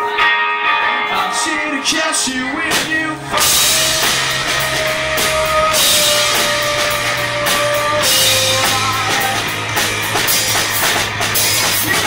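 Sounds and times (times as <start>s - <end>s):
bass guitar: 0.0s - 12.0s
electric guitar: 0.0s - 12.0s
drum and cymbal hits: 2.7s - 12.0s.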